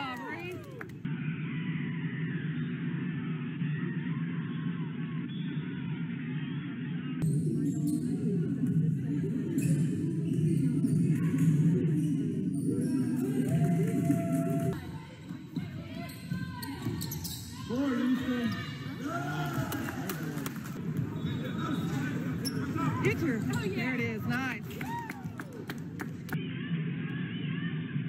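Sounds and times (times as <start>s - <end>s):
music: 0.0s - 17.6s, 23.1s - 28.0s
echoing voices in a gym: 0.0s - 28.0s.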